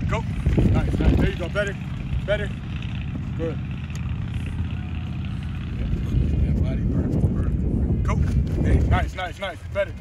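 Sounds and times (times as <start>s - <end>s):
wind buffeting microphone: 0.0s - 3.4s, 4.1s - 10.0s.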